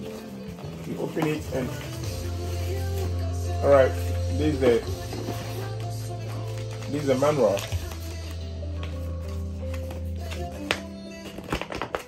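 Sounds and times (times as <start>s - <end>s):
background music with held notes: 0.0s - 12.0s
paper crinkling: 0.0s - 12.0s.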